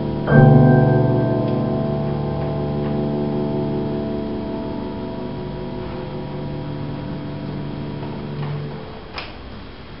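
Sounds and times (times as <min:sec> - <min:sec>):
steady hiss: 0:00.0 - 0:10.0
upright piano notes: 0:00.0 - 0:10.0.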